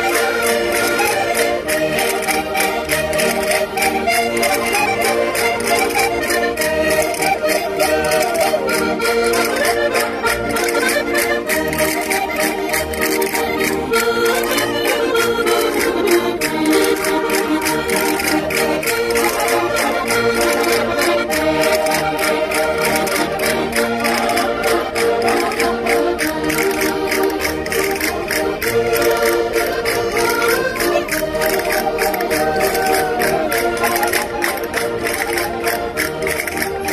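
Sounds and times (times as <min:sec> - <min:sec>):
accordions playing folk dance tune: 0:00.0 - 0:36.9
castanets clicking: 0:00.1 - 0:36.9.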